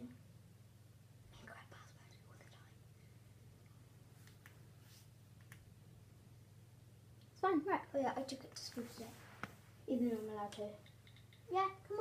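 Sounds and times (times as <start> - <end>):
low steady hum: 0.0 - 12.0
faint whisper: 1.2 - 3.2.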